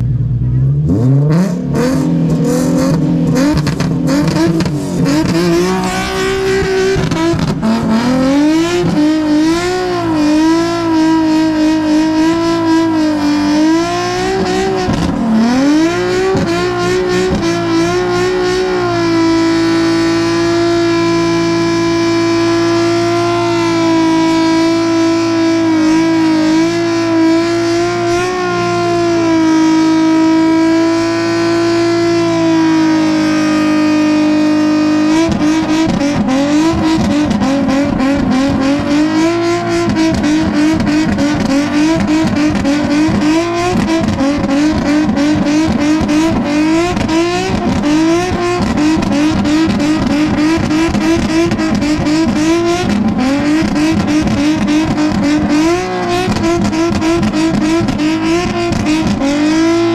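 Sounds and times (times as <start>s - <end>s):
car engine revving high: 0.0s - 59.9s
tires spinning: 0.0s - 59.9s.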